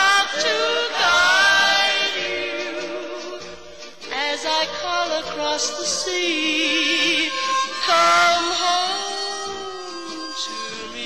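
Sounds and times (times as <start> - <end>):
song with sung lines: 0.0 - 11.0.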